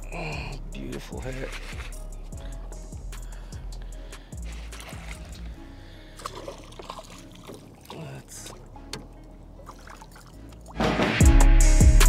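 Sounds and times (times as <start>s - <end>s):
fish splashing at water surface: 4.4s - 8.7s, 9.6s - 11.0s.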